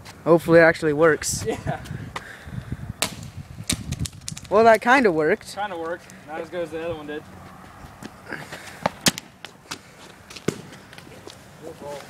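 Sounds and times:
footsteps on asphalt: 5.7s - 12.0s.

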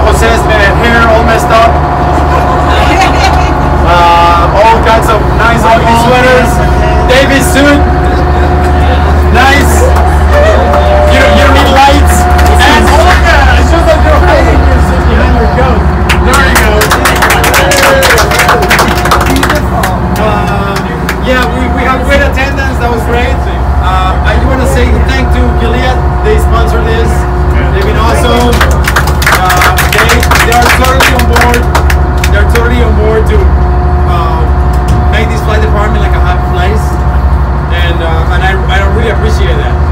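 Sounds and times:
boat engine droning: 0.0s - 39.9s
steady low hum: 0.0s - 39.9s
man speaking: 3.8s - 8.0s, 19.0s - 28.7s.

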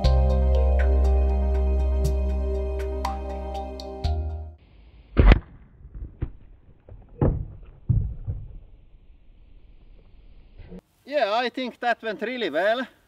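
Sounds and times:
background music: 0.0s - 4.6s
loud thunk: 5.2s - 8.7s.

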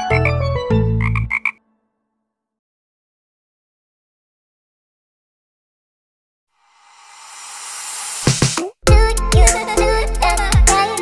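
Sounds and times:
cartoon frog croaks: 1.0s - 1.6s
children's song with bass line: 8.2s - 11.0s.

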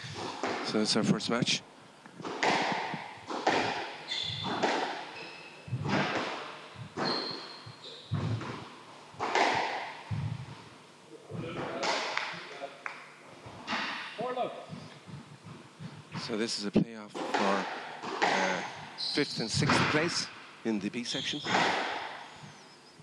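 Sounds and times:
squash ball hits echoing: 0.1s - 0.8s, 2.2s - 5.1s, 5.7s - 7.4s, 8.1s - 10.4s, 11.6s - 12.5s, 17.1s - 19.0s, 21.4s - 22.3s
shoes squeaking on wooden floor: 3.2s - 9.5s, 14.7s - 16.6s, 21.0s - 23.0s.

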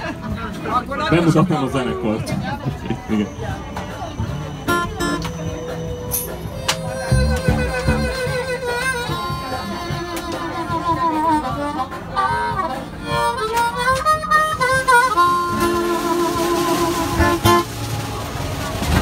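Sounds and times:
harmonica notes and chords: 4.2s - 17.7s.

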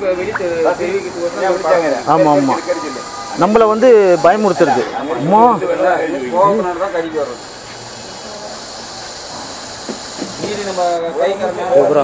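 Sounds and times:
snake hissing: 0.4s - 12.0s
person speaking: 4.1s - 6.8s.

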